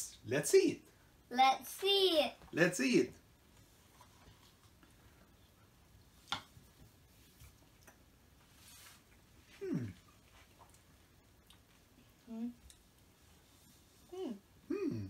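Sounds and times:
person humming mmm: 9.6 - 10.1, 14.1 - 15.0.

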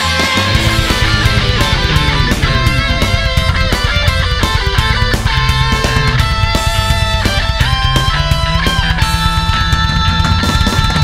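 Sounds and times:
heavy metal music: 0.0 - 11.0.

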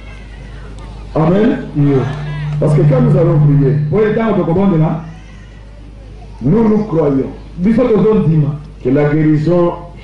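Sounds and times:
low held note: 1.2 - 5.8.

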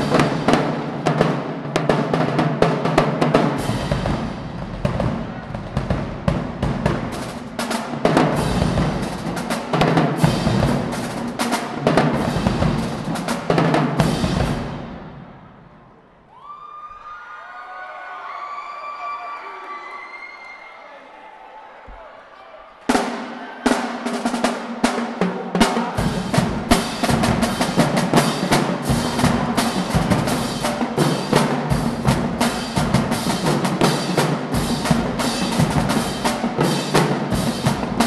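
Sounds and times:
marching drumline cadence: 0.0 - 16.2, 21.8 - 38.0.

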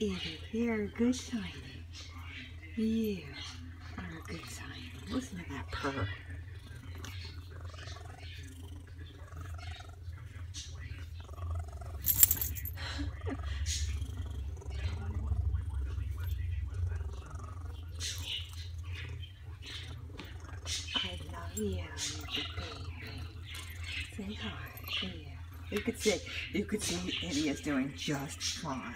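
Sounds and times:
cat purring: 3.4 - 28.9.

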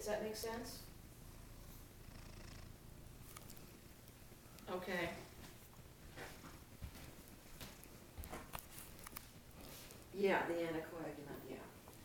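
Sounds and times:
cat purring: 0.1 - 8.0.

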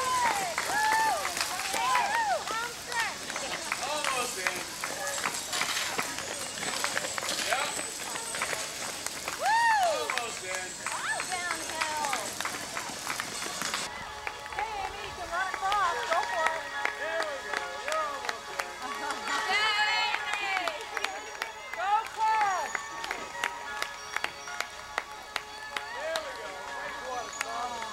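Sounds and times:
spectators shouting and whooping: 0.0 - 3.0, 9.3 - 12.4
footfalls on pavement: 0.0 - 27.9.

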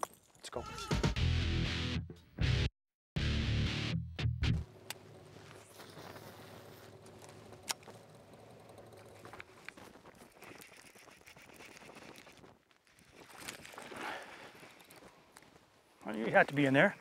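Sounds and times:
faint outdoor background on water: 4.7 - 16.0.

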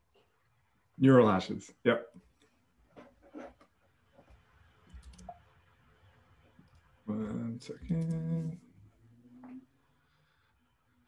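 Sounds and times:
computer mouse clicks: 4.9 - 5.4.

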